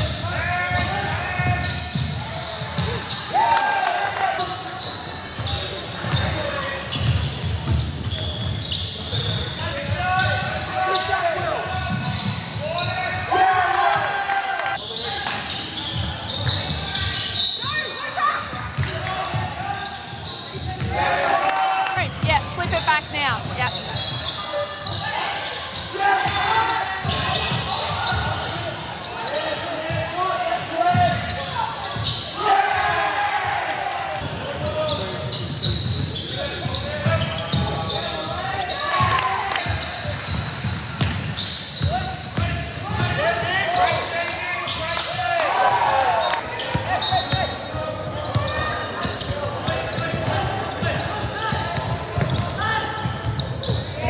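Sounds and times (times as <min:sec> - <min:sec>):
voices echoing in gym: 0:00.0 - 0:54.0
basketball bouncing on court: 0:00.7 - 0:03.2, 0:05.3 - 0:10.5, 0:18.5 - 0:19.6, 0:39.0 - 0:43.5, 0:46.6 - 0:54.0
shoes squeaking: 0:04.7 - 0:21.0, 0:22.0 - 0:29.9, 0:39.8 - 0:45.1, 0:46.1 - 0:54.0.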